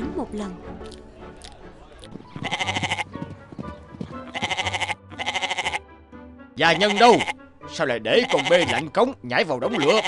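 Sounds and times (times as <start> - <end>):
goat bleating: 2.4 - 3.1, 4.3 - 5.8, 6.6 - 7.4, 8.1 - 8.9, 9.6 - 10.0.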